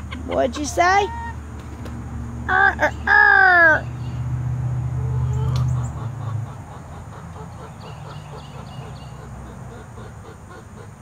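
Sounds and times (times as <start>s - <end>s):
chickens clucking: 0.0s - 3.4s, 4.8s - 11.0s.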